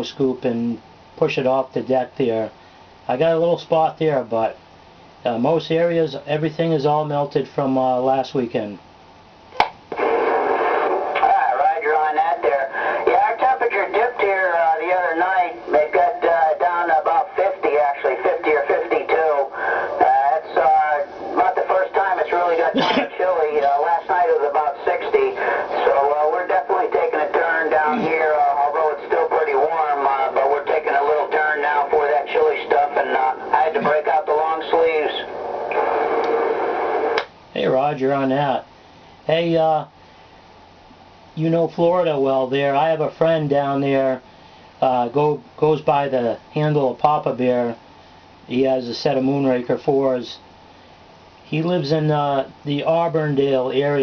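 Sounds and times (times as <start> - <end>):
radio static hiss: 0.0 - 54.0
radio click: 9.5 - 11.4, 22.5 - 23.9, 35.6 - 37.4
man's voice over cb radio: 10.0 - 36.6.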